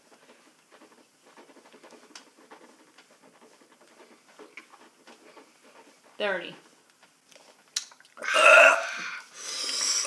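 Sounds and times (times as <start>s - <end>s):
man burping loudly: 8.2s - 9.2s
long breathy exhale: 8.8s - 10.0s.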